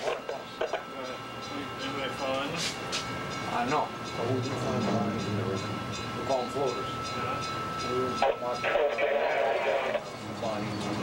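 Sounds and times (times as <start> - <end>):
bridge machinery rumbling: 0.0 - 11.0
thin high tone: 0.5 - 10.9.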